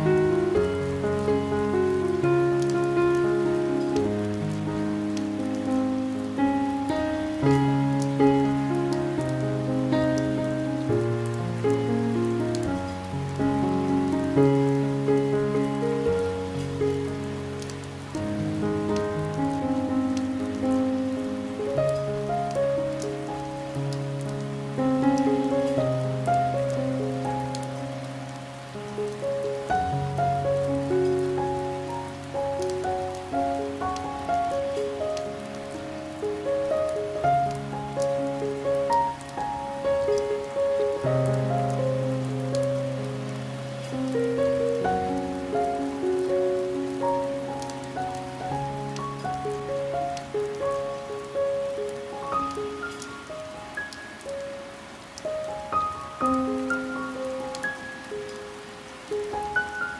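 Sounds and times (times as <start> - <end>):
slow gentle piano music: 0.0 - 59.9
steady rain with drops ticking: 0.0 - 59.9.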